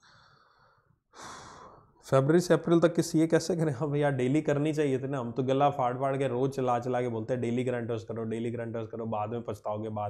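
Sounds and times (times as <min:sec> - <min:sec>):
man breathing: 0:00.0 - 0:02.0
man speaking: 0:02.1 - 0:10.0.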